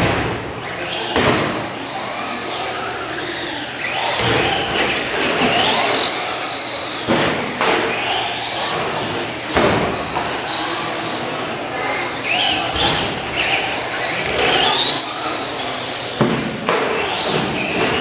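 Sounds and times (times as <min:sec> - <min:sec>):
rc truck motor whine: 0:01.0 - 0:07.1.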